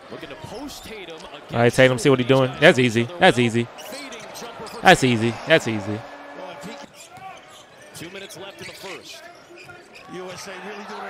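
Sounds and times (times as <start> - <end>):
commentator speaking: 1.5 - 3.8, 4.8 - 6.1.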